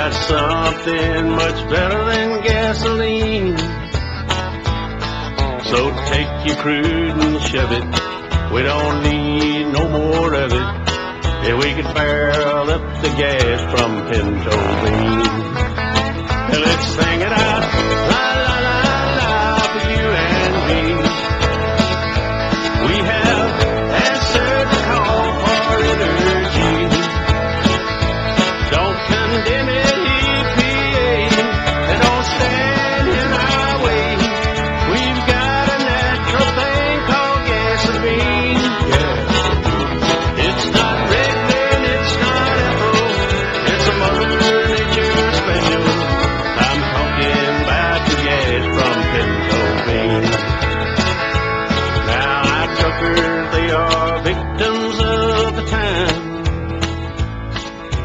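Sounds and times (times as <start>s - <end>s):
lead guitar: 0.0s - 58.0s
upbeat country band: 0.0s - 58.0s.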